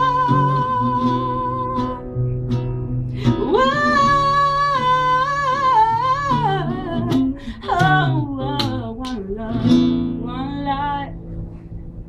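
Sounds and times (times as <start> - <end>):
woman singing: 0.0 - 2.3, 3.2 - 11.2
fingerpicked classical guitar: 0.0 - 12.0.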